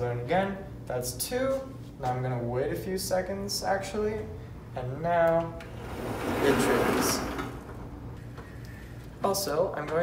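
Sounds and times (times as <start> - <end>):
sliding door motor and belt: 5.6 - 8.2.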